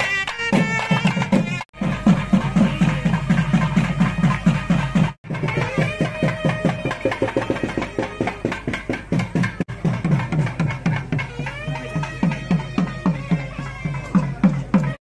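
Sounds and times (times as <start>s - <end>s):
nadaswaram melody: 0.0s - 15.0s
rapid drum strokes: 0.0s - 15.0s.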